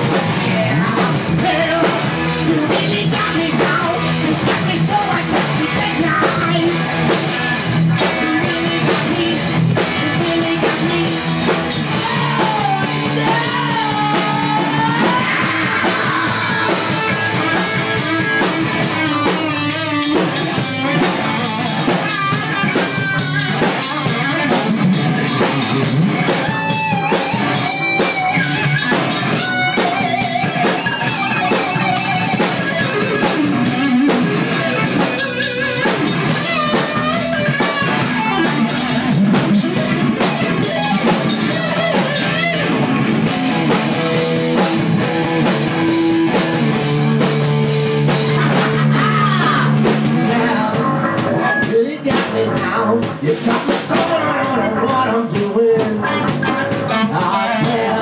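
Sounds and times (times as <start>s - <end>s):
rock band playing loudly: 0.0s - 58.0s.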